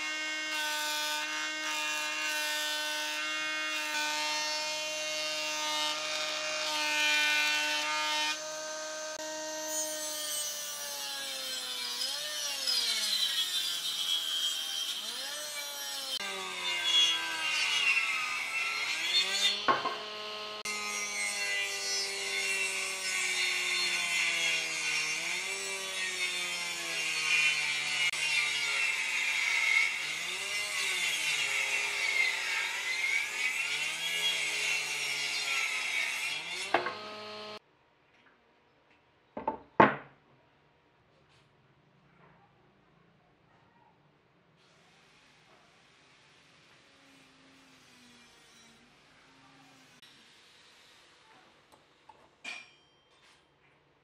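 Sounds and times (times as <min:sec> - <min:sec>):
saw cutting wood: 0:00.0 - 0:37.6, 0:44.6 - 0:51.6.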